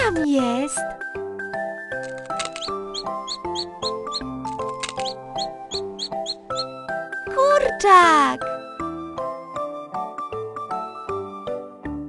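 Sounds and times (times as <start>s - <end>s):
high squeaky peeps: 2.1s - 6.7s
cartoon music: 2.4s - 6.7s.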